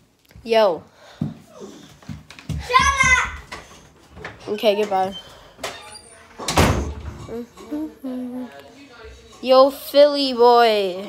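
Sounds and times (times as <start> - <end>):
door shutting: 5.2 - 7.3.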